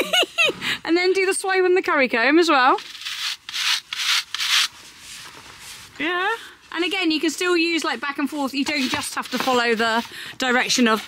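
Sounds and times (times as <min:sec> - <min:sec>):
brush scraping horse hair: 0:02.8 - 0:05.8, 0:08.4 - 0:11.0.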